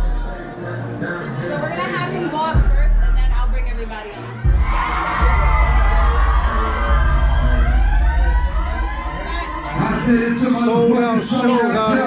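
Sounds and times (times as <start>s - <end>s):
loud hip-hop music with sub-bass: 0.0s - 12.0s
people's voices: 0.0s - 12.0s.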